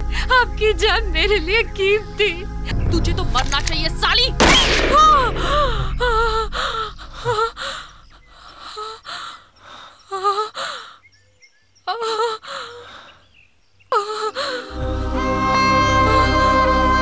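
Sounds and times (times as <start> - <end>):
woman gasping and moaning: 4.9 - 11.0, 11.9 - 13.2, 13.9 - 14.8.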